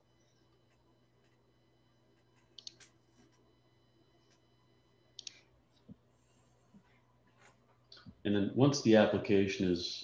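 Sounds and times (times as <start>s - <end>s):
computer mouse clicks: 2.4s - 3.0s, 5.2s - 5.4s.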